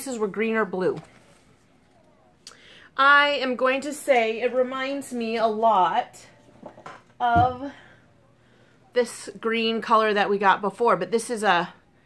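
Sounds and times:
woman talking: 0.0s - 1.1s, 3.0s - 6.4s, 7.2s - 8.0s, 8.9s - 11.8s.

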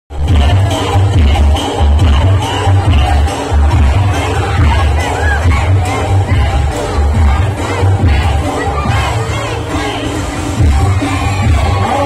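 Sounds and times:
crowd shouting and cheering: 0.1s - 12.0s
loud dance music with bass: 0.1s - 12.0s.

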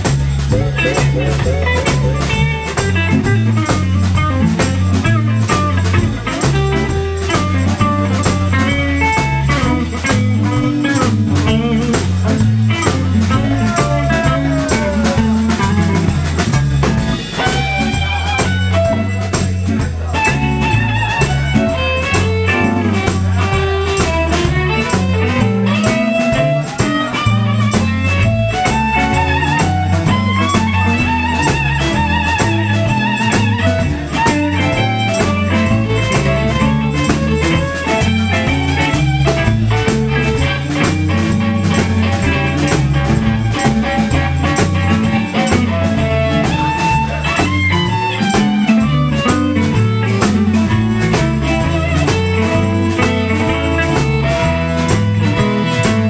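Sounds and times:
blues band playing live: 0.0s - 56.0s
melodic guitar lead line: 0.0s - 56.0s.

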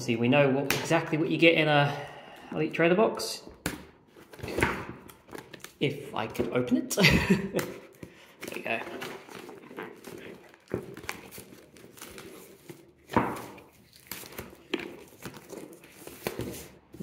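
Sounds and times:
cardboard rustling and scraping: 8.3s - 17.0s.

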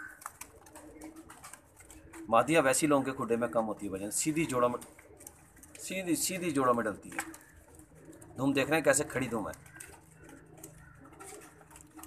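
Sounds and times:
pigeon cooing: 0.0s - 3.8s, 7.1s - 12.0s.

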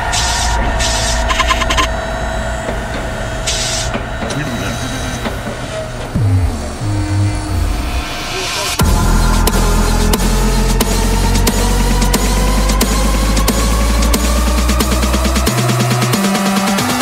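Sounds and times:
low sliding bass wobble: 0.0s - 16.2s
dark electronic music: 0.0s - 17.0s
noise bursts: 0.0s - 17.0s.

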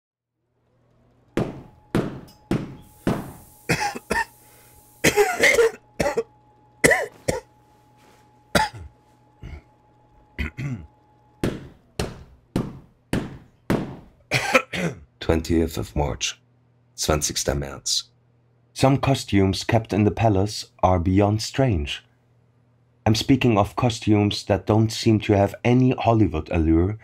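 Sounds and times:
man coughing: 3.7s - 4.4s, 5.0s - 7.5s, 8.5s - 9.7s, 10.4s - 10.9s, 14.3s - 15.1s
carpet beater thwacking cloth: 11.4s - 14.1s.

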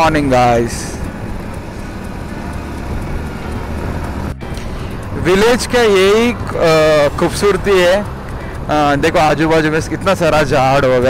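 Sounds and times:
motorcycle engine: 0.0s - 11.0s
tyres on road: 0.0s - 11.0s.

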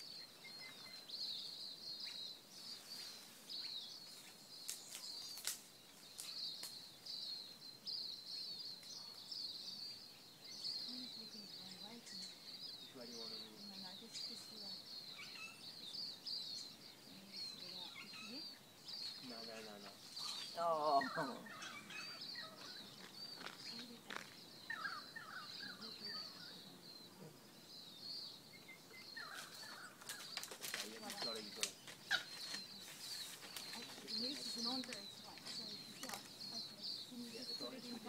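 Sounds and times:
birds chirping: 0.0s - 38.0s
sharp clicks and rustles: 30.0s - 36.3s.

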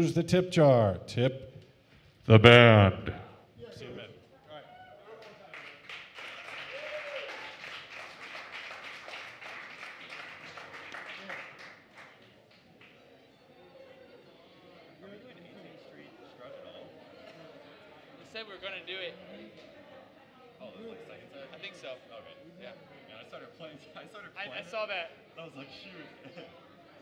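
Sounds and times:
faint room chatter: 1.0s - 27.0s
audience applauding: 5.1s - 12.9s.

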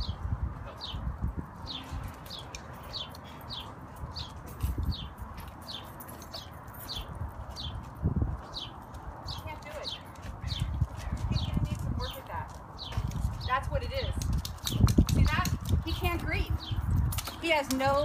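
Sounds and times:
bird chirping: 0.0s - 13.7s
voices talking: 9.2s - 14.2s.

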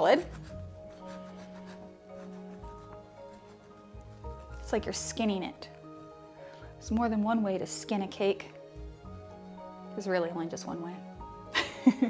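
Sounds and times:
soft instrumental music: 0.0s - 12.0s.

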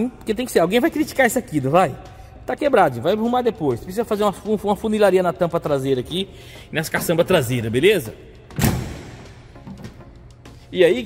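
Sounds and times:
heavy booming thump: 8.6s - 9.9s.

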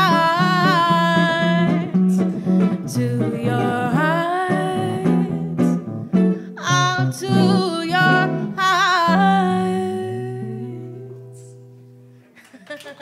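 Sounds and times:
woman singing jazz: 0.0s - 5.8s, 6.4s - 11.7s
plucked jazz guitar: 0.0s - 12.2s.

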